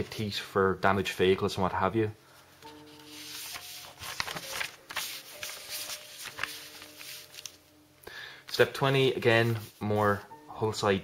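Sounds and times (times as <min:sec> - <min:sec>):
faint background music: 0:00.0 - 0:11.0
paper rustling and crinkling: 0:02.6 - 0:07.6.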